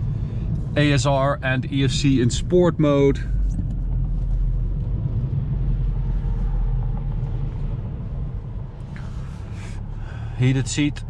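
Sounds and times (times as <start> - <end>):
car engine cabin drone: 0.0 - 11.0
tyre and road rumble: 0.0 - 11.0.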